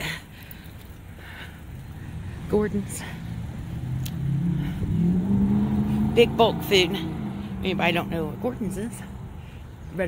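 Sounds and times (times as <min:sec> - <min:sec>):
car engine speeding up: 0:03.6 - 0:08.6.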